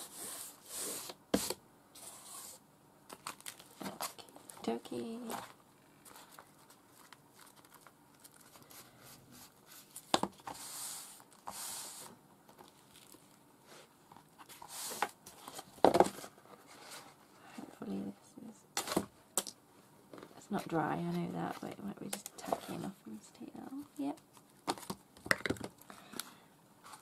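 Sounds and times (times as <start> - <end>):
paper rustling and sliding: 0.0 - 4.2, 5.3 - 17.2.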